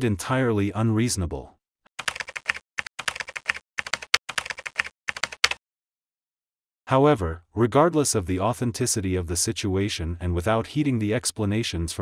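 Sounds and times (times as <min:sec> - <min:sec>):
keyboard typing clicks: 0:02.0 - 0:05.6.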